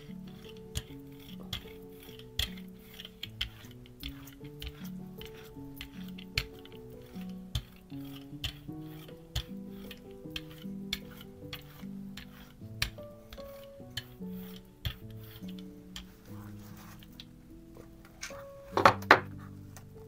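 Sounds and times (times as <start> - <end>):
soft background music: 0.0 - 20.0.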